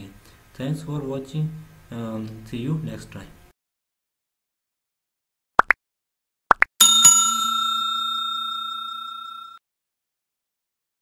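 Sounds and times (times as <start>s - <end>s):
notification bell ding: 6.8s - 9.6s.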